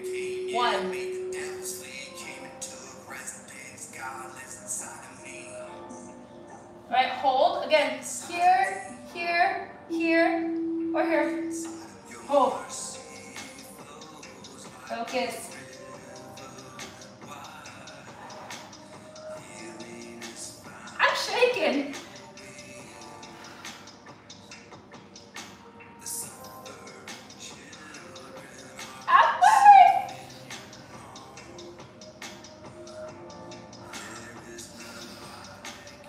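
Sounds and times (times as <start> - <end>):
background music: 0.0 - 36.0
woman talking: 0.5 - 0.9, 6.9 - 11.7, 12.3 - 12.6, 14.9 - 15.5, 21.0 - 21.9, 29.1 - 30.1.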